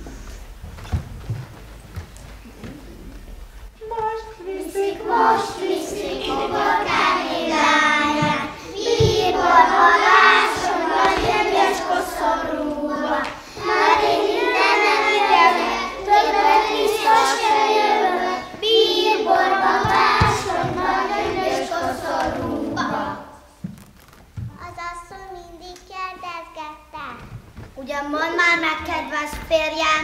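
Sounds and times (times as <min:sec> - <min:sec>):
young children singing: 0:03.9 - 0:23.6.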